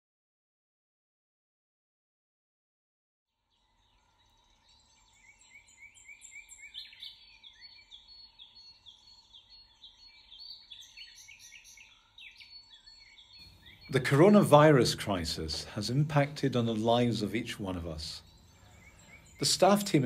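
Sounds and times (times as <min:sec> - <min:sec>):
small birds chirping: 0:03.4 - 0:20.0.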